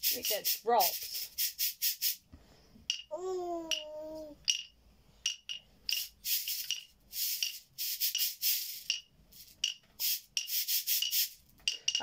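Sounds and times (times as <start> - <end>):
beaded shaker rasping: 0.0 - 2.2, 4.4 - 12.0.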